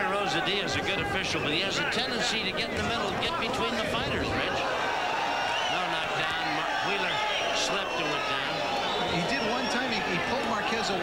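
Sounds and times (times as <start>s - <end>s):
man commentating: 0.0s - 4.8s, 5.7s - 11.0s
arena background noise: 0.0s - 11.0s.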